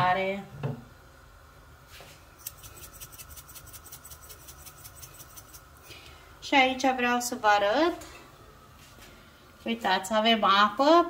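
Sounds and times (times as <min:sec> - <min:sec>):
salt shaker rattling: 0:02.4 - 0:05.8.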